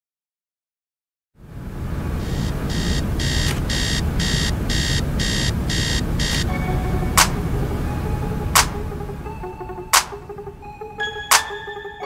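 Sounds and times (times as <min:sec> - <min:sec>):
digital alarm clock beeping: 0:02.3 - 0:06.6.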